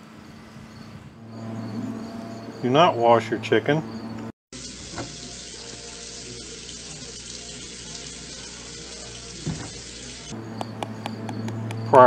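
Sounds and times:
tap water running into sink: 0:04.6 - 0:10.3.

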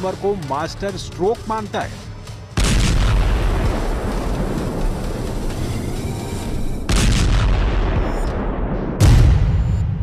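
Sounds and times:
loud boom with low rumble: 0:06.9 - 0:10.0.

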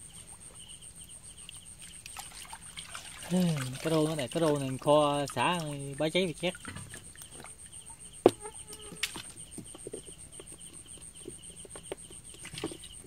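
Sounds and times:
crickets trilling: 0:00.0 - 0:13.0.

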